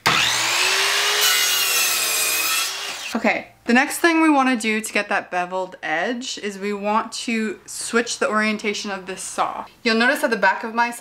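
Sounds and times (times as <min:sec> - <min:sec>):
mitre saw cutting wood: 0:00.0 - 0:03.2.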